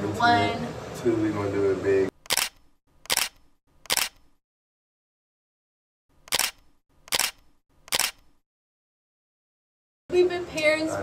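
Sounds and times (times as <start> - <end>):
camera shutter clicks: 2.2 - 4.4, 6.2 - 8.4.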